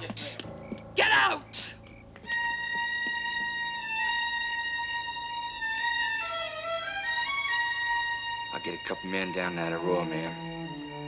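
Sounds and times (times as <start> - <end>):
violin playing dramatic music: 2.2 - 11.0.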